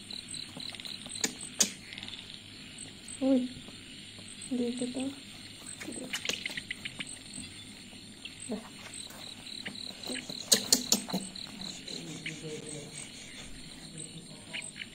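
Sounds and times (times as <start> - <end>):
crickets chirping: 0.0 - 14.9.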